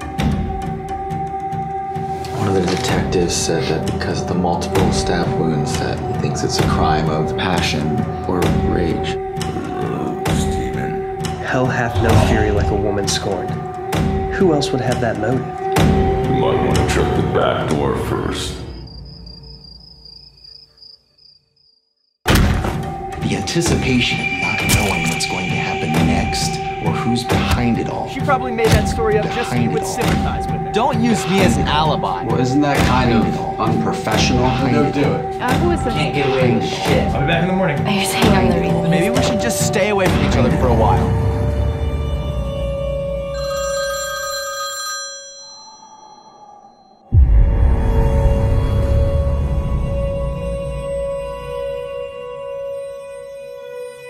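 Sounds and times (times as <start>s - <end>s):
low background music: 0.0s - 18.7s, 22.3s - 43.6s
crickets chirping: 15.4s - 22.2s, 23.5s - 32.5s
telephone ringing: 43.4s - 46.4s.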